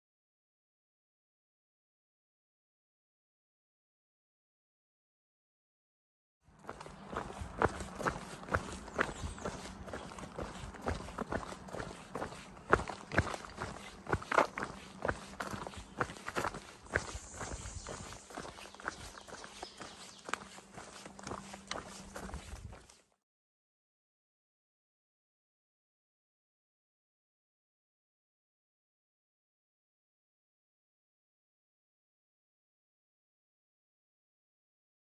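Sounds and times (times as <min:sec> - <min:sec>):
footsteps crunching on dirt trail: 0:06.5 - 0:23.1.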